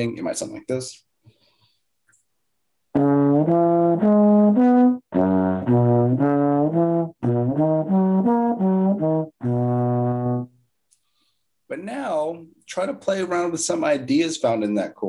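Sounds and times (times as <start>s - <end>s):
trombone playing scales: 2.9s - 10.7s.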